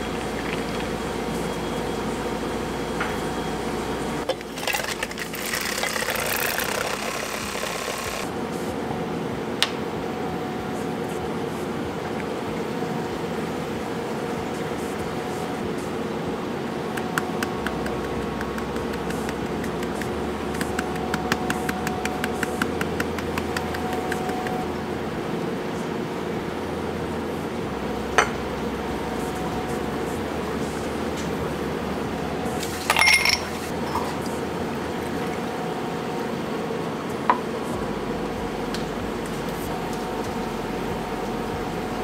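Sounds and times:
steady background hum: 0:00.0 - 0:42.0
powder shaker tapping: 0:17.0 - 0:24.6
glassware clinking: 0:28.2 - 0:28.4, 0:32.6 - 0:34.2.

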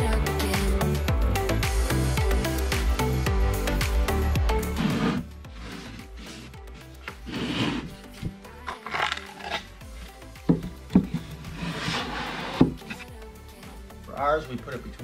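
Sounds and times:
quiet background music: 0:00.0 - 0:15.0
plywood panels scraping: 0:04.7 - 0:13.1.

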